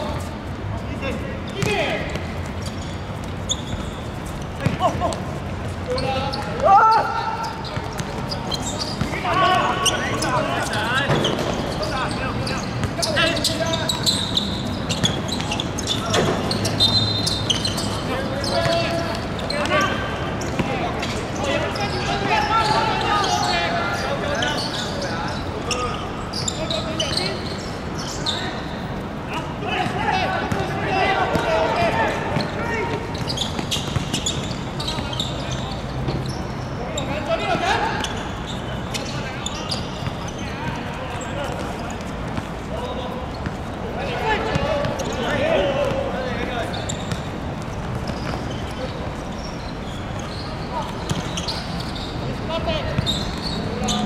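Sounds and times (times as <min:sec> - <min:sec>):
footballers shouting: 0:04.6 - 0:24.8, 0:29.3 - 0:33.4, 0:43.8 - 0:46.8.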